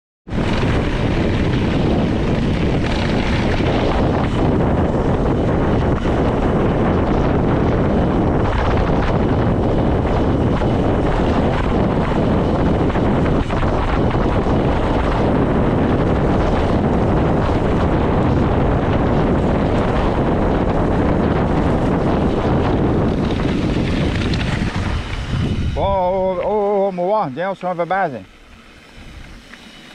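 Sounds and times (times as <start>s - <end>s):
wind buffeting microphone: 0.3s - 29.9s.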